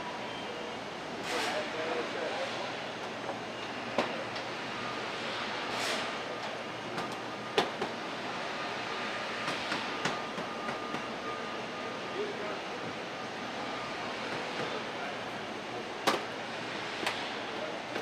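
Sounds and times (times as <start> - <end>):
machinery hum and hiss: 0.0 - 18.0.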